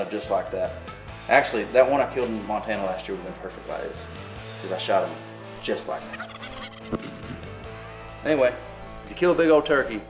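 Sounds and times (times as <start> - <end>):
turkey gobbling: 5.7 - 7.1.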